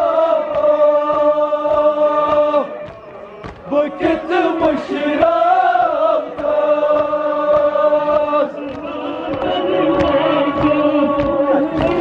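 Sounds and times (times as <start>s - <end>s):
men chanting a lament: 0.0s - 12.0s
hands beating chests: 0.5s - 4.8s, 6.3s - 12.0s.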